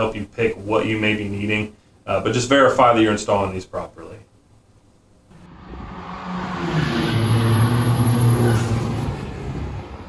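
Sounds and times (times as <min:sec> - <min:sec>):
vehicle engine revving: 0:05.3 - 0:10.0.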